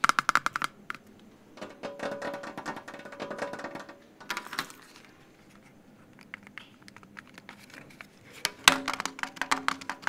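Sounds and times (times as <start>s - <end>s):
fingertips tapping plastic lid: 1.6s - 4.4s, 8.4s - 10.0s
light clicks and scratches: 2.6s - 10.0s.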